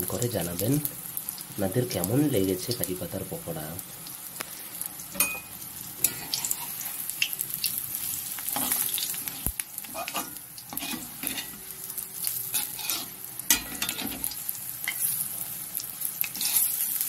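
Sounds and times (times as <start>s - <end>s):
food sizzling in oil: 0.0s - 17.0s
metal spatula scraping pan: 6.0s - 7.0s, 8.5s - 11.6s, 12.5s - 15.1s, 16.2s - 17.0s.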